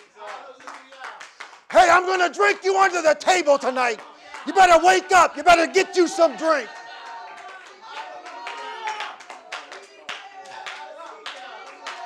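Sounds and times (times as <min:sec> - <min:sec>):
congregation clapping: 0:00.0 - 0:12.0.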